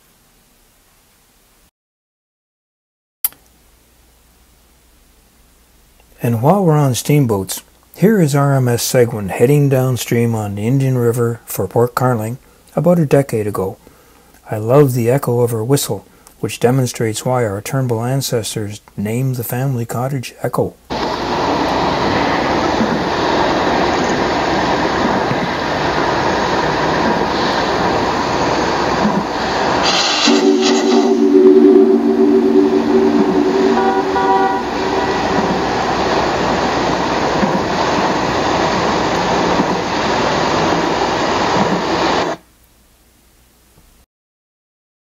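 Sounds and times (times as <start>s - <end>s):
short steam hiss: 20.9s - 42.4s
steady rushing noise: 20.9s - 42.4s
steam whistle chord: 29.6s - 36.8s.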